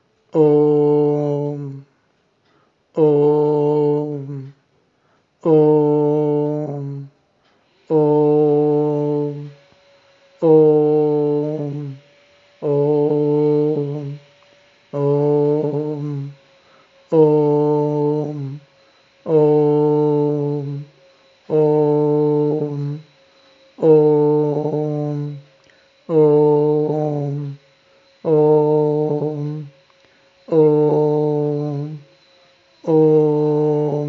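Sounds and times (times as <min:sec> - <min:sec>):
man chanting one syllable: 0:00.0 - 0:01.9, 0:02.9 - 0:04.6, 0:05.4 - 0:07.2, 0:07.8 - 0:09.6, 0:10.4 - 0:27.6, 0:28.2 - 0:29.8, 0:30.4 - 0:32.2, 0:32.8 - 0:34.0
short breaths: 0:01.9 - 0:02.9, 0:04.8 - 0:05.4, 0:16.4 - 0:17.1, 0:25.6 - 0:26.0.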